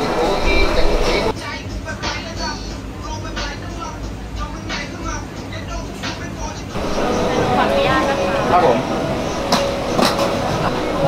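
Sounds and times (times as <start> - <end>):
indistinct voices: 0.0 - 1.4, 6.7 - 11.0.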